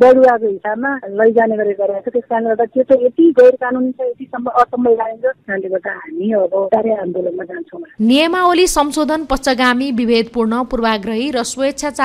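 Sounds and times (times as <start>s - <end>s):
telephone-like voice: 0.0s - 8.0s
person speaking: 0.0s - 12.0s.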